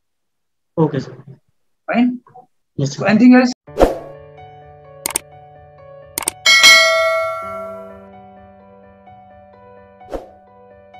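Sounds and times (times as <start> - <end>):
soft background music: 3.7 - 10.9
short clicks: 5.0 - 5.2, 6.2 - 6.4
bright bell ding: 6.4 - 8.0.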